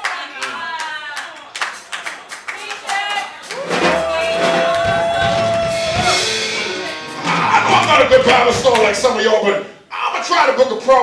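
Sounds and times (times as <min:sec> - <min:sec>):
congregation clapping: 0:00.0 - 0:06.5, 0:07.2 - 0:09.2
voices calling out: 0:03.6 - 0:09.1
keyboard holding long note: 0:03.8 - 0:09.0.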